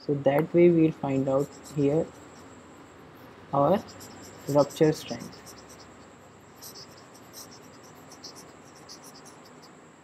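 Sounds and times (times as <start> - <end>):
high-pitched whine: 0.9 - 9.8.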